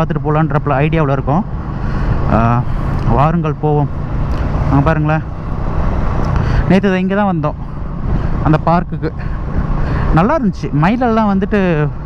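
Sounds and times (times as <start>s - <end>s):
man talking: 0.0s - 1.5s, 2.2s - 3.9s, 4.6s - 5.3s, 6.4s - 7.6s, 8.3s - 12.0s
motorcycle engine rumble: 0.0s - 12.0s.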